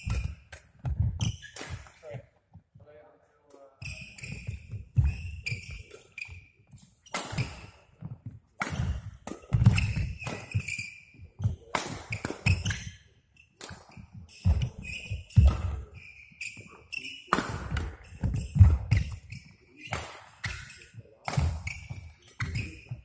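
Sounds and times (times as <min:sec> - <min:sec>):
shoes squeaking on court floor: 0:00.0 - 0:02.7, 0:03.6 - 0:23.0
racket striking shuttlecock: 0:07.1 - 0:10.8.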